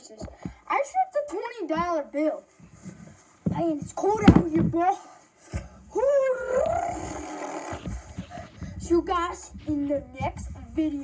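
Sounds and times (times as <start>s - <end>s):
child howling: 6.0s - 7.9s.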